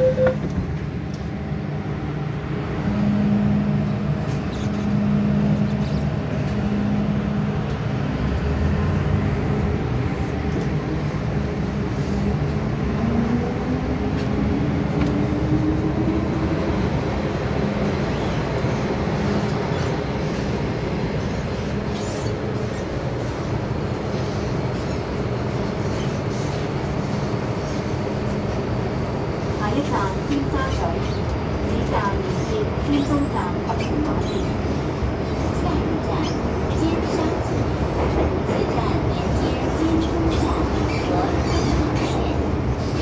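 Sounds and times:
train motor and running hum: 0.0s - 43.0s.

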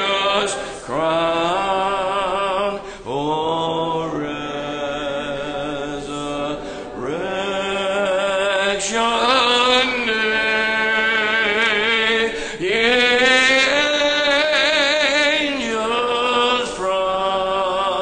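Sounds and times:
congregation singing a hymn: 0.0s - 18.0s.

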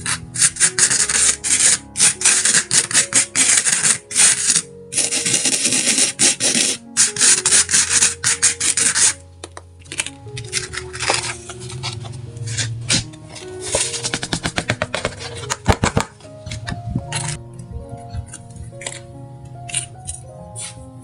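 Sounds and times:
spoon scraping sand: 0.0s - 9.2s, 19.7s - 20.8s
soft background music: 0.0s - 21.0s.

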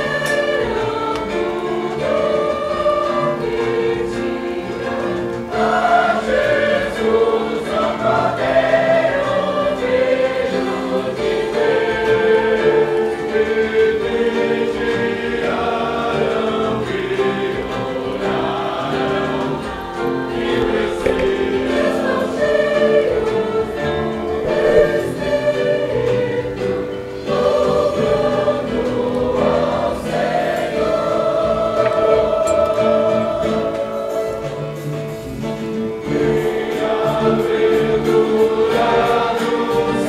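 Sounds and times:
congregation singing a hymn: 0.0s - 40.0s
guitars: 0.0s - 40.0s
keyboard: 0.0s - 40.0s.

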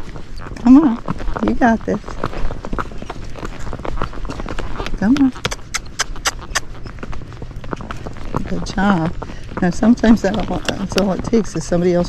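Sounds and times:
hooves clopping on pavement: 0.0s - 12.0s.

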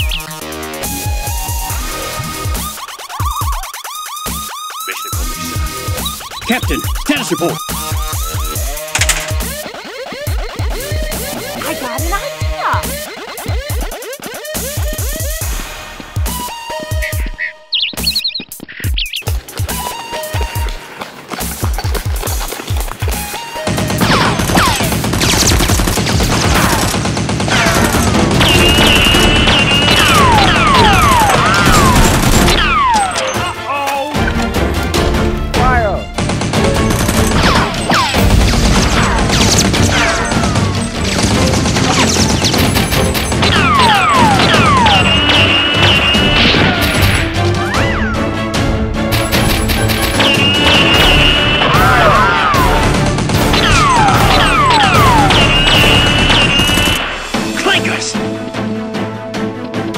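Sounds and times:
background music: 0.0s - 59.9s
rapid gunfire: 23.4s - 33.0s, 36.2s - 47.3s, 49.1s - 57.5s
falling whistles: 28.5s - 32.0s, 43.6s - 46.8s, 50.2s - 52.7s, 53.8s - 57.0s.

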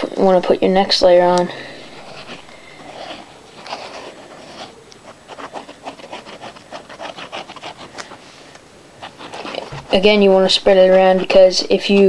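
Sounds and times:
glue nozzle scraping paper: 1.8s - 12.0s.

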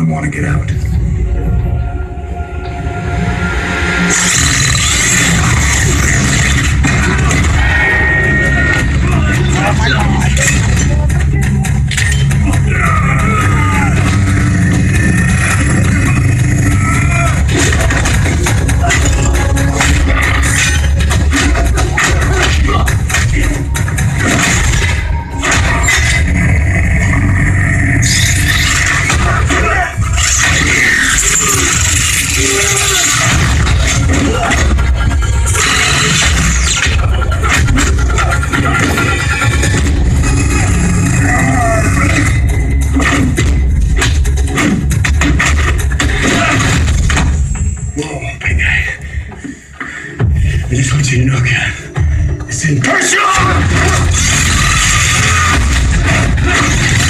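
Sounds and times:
music: 0.0s - 57.0s
men straining and groaning: 4.3s - 11.3s, 12.2s - 47.3s, 51.5s - 57.0s
fight blows and impacts: 53.4s - 57.0s.

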